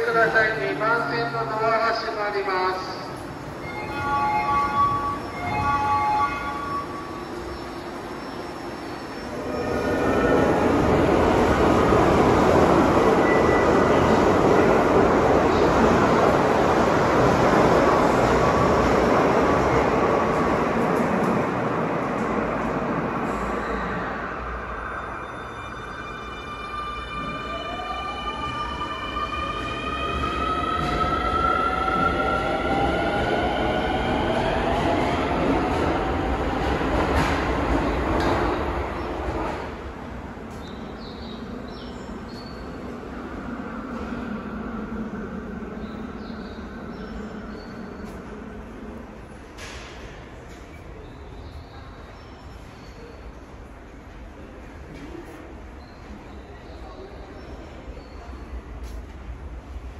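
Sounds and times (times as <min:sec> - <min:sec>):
subway train rumbling: 0:00.0 - 0:59.9.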